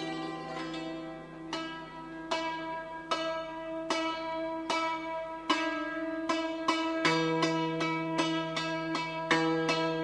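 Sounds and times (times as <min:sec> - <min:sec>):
hammered dulcimer notes: 0:00.0 - 0:10.0.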